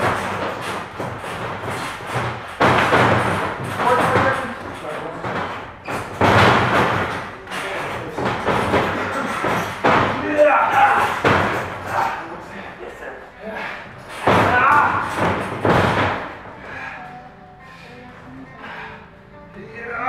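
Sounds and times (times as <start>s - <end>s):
heavy thuds on wrestling mat: 14.2s - 16.4s.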